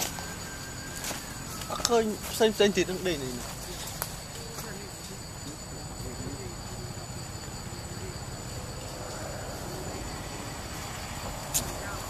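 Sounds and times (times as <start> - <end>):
high-pitched insect chorus: 0.0 - 12.0
faint voices murmuring: 1.0 - 12.0.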